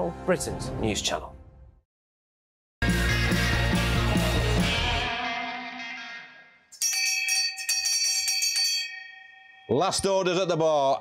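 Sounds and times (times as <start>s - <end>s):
brass bell rung rapidly: 6.8s - 9.8s.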